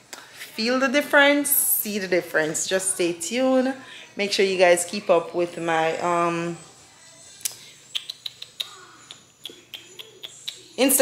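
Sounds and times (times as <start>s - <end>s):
woman's mouth clicks: 7.4s - 10.6s.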